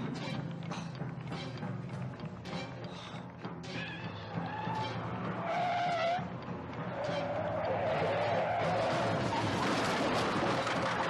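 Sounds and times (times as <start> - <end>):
tires squealing: 3.7 - 11.0.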